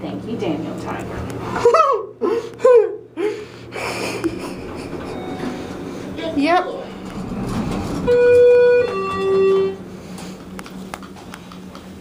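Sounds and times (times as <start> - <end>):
elevator arrival chime: 4.5 - 10.0.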